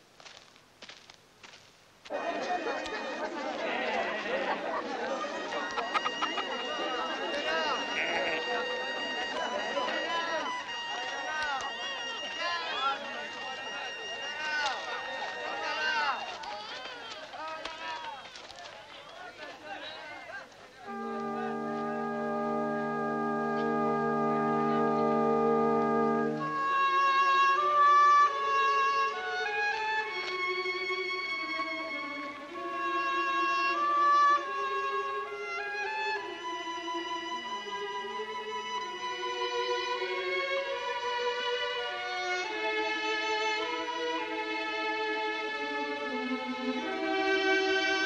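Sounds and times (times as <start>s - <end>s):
crowd chatter: 2.1s - 28.5s
film music chord: 5.6s - 14.1s, 20.8s - 27.8s
high held notes: 20.8s - 27.9s.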